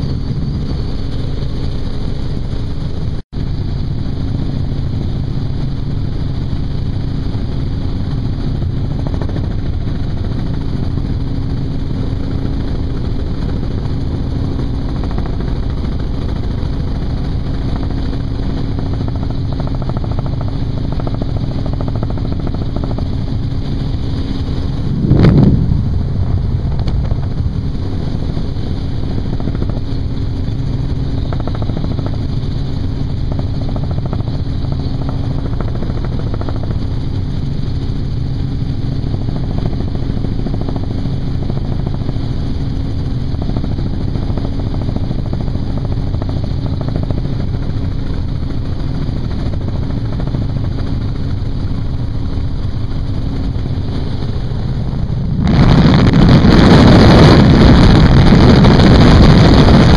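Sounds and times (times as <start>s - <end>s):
helicopter rotor and engine drone: 0.0s - 59.9s
wind rushing on microphone: 0.0s - 59.9s.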